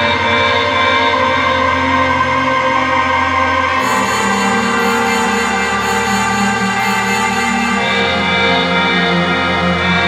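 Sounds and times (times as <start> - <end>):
sustained synth chords: 0.0 - 10.0.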